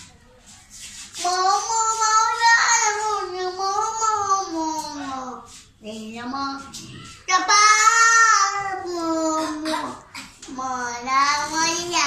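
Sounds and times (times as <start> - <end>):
boy singing into microphone: 1.2 - 12.0.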